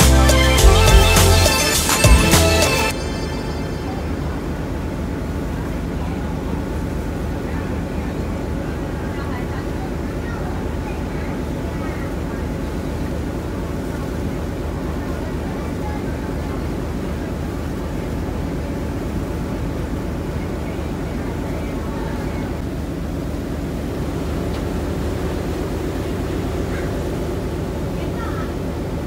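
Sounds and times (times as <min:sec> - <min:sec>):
faint voices: 0:00.0 - 0:22.7, 0:25.4 - 0:29.0
ferry engine drone: 0:00.0 - 0:29.0.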